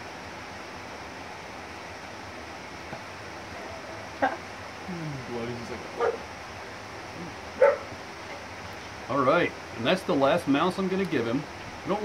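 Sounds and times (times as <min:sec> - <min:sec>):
background hiss: 0:00.0 - 0:12.0
dog barking: 0:06.0 - 0:06.2, 0:07.6 - 0:07.9.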